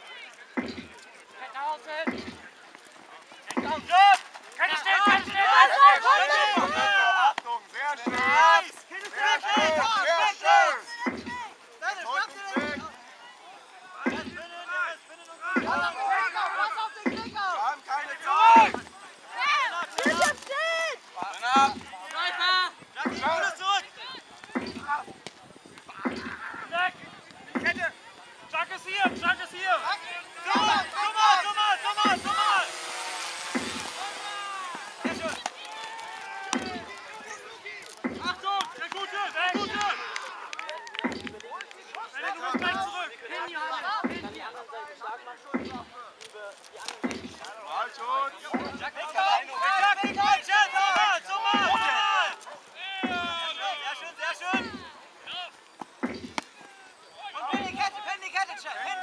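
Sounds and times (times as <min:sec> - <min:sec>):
drum thumps: 0:00.6 - 0:01.0, 0:02.0 - 0:02.4, 0:03.6 - 0:03.9, 0:05.0 - 0:05.4, 0:06.5 - 0:06.9, 0:09.5 - 0:09.9, 0:11.0 - 0:11.5, 0:12.5 - 0:13.0, 0:14.1 - 0:14.4, 0:15.6 - 0:15.9, 0:17.0 - 0:17.4, 0:21.5 - 0:21.9, 0:24.4 - 0:25.0, 0:25.9 - 0:26.6, 0:27.5 - 0:27.9, 0:29.0 - 0:29.5, 0:30.5 - 0:30.9, 0:32.0 - 0:35.5, 0:38.0 - 0:38.5, 0:39.5 - 0:39.9, 0:41.0 - 0:41.4, 0:42.5 - 0:42.9, 0:44.0 - 0:44.4, 0:45.6 - 0:45.9, 0:47.0 - 0:47.4, 0:51.5 - 0:51.8, 0:53.0 - 0:53.4, 0:54.5 - 0:54.9, 0:55.8 - 0:56.5, 0:57.5 - 0:58.0
people shouting: 0:03.4 - 0:44.6, 0:46.8 - 0:59.0.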